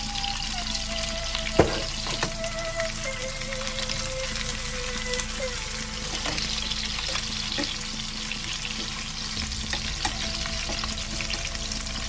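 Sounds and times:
chicken sizzling in hot oil: 0.0 - 12.0.

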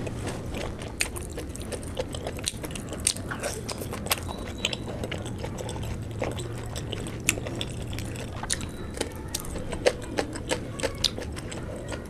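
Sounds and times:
chewing mouth clicks: 0.0 - 12.0.

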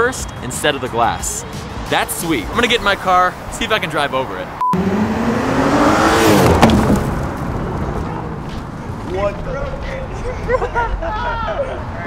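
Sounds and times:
tyre and road noise: 0.0 - 12.0
car driving past: 1.5 - 9.2.

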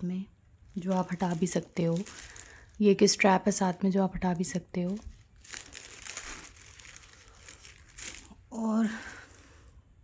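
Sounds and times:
plastic packaging crinkling: 0.6 - 9.4.

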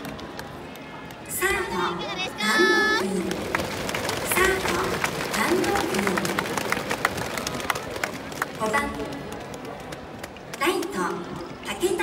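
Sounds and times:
crowd clapping: 0.0 - 11.6
crowd murmur: 0.0 - 12.0.

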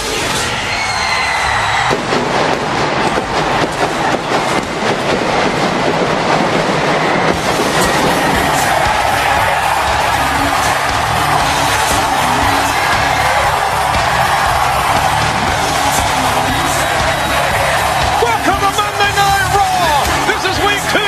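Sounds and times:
arena crowd cheering: 0.0 - 21.0
pyrotechnics crackling bangs: 1.8 - 21.0.

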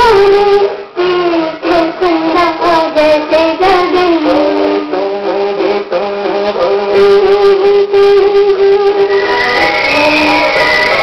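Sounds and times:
woman singing: 0.0 - 10.6
musical accompaniment: 0.0 - 11.0.

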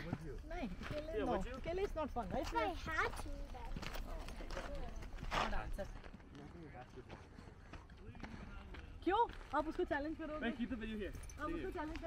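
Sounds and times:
footsteps on rocky dirt trail: 0.0 - 12.0.

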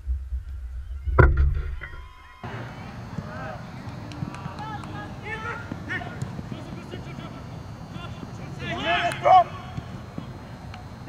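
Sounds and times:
running feet thudding: 1.2 - 11.0
players shouting: 1.8 - 11.0.

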